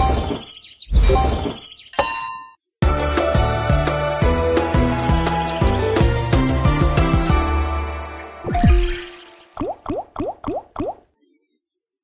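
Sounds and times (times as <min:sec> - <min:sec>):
game win music: 0:02.8 - 0:09.2
rising bubble-like blips: 0:08.4 - 0:11.0.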